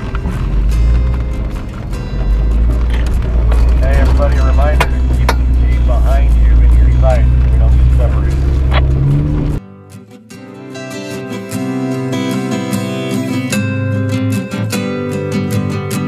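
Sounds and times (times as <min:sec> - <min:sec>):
vehicle engine rumble: 0:00.0 - 0:09.6
acoustic guitar music: 0:00.0 - 0:16.0
muffled voices: 0:03.7 - 0:09.0.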